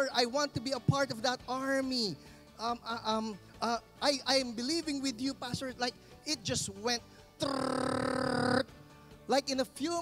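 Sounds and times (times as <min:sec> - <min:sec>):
soft background music: 0:00.0 - 0:10.0
man making buzzy vocal sound effect: 0:07.4 - 0:08.7.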